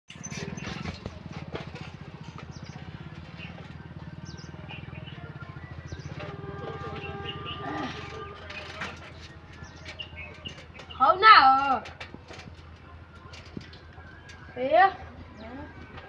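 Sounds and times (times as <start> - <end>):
birds chirping: 0.1 - 16.0
engine throbbing: 0.1 - 16.0
distant train horn: 6.0 - 9.3.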